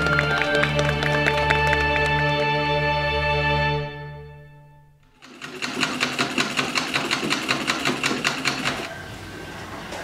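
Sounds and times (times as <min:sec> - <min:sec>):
sewing machine stitching: 0:05.1 - 0:08.9.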